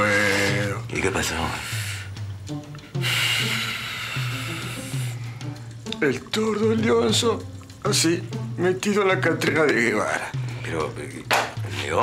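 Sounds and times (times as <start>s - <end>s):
bright hissy wash: 0.0s - 11.8s.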